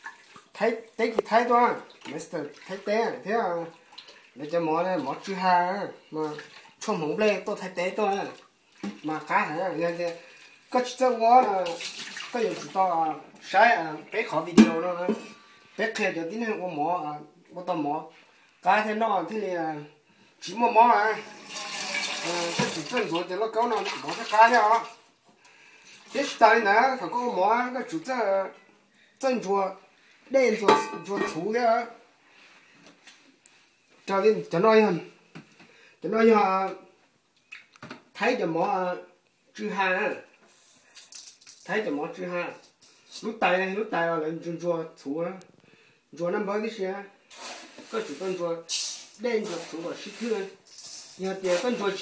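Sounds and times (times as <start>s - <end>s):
person talking: 0.6s - 3.7s, 4.4s - 25.0s, 26.1s - 28.6s, 29.2s - 32.0s, 46.2s - 47.1s, 47.8s - 50.6s, 51.2s - 52.0s
faucet running water into pot: 21.2s - 23.2s
loud hiss: 47.3s - 51.8s.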